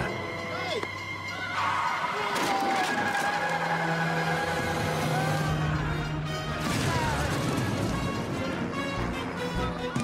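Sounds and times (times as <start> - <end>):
dramatic music: 0.0 - 10.0.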